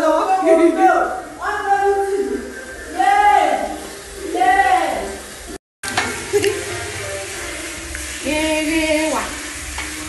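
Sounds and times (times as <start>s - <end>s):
food sizzling in a pot: 0.0s - 10.0s.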